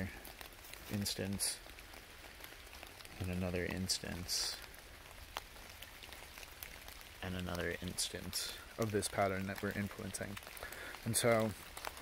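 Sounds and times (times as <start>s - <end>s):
light rain hiss: 0.0s - 12.0s.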